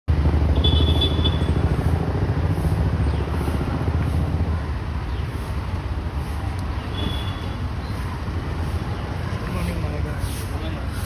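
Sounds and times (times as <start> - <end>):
engine running: 0.1 - 7.1.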